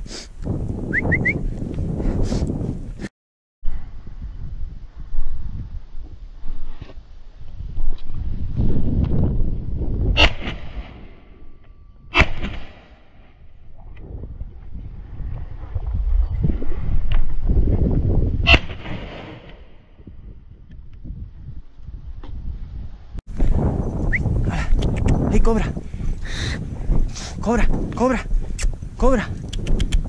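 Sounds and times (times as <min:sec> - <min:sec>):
shotgun shots: 0:10.2 - 0:11.0, 0:12.2 - 0:13.0, 0:18.5 - 0:19.7.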